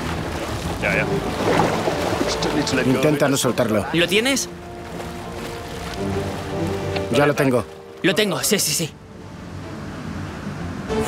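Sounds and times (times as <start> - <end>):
sea water splashing: 0.0 - 11.0.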